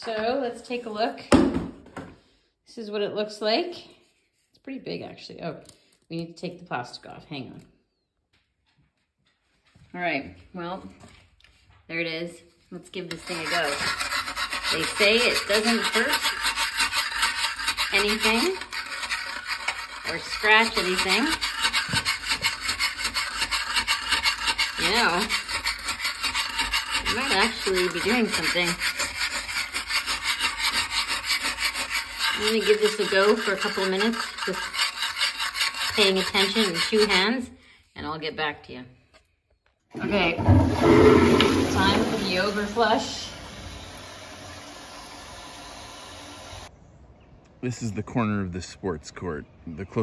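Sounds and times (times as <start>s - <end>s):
pumice stone scrubbing toilet bowl: 12.8s - 37.4s, 40.0s - 44.5s
toilet flushing: 40.0s - 44.7s.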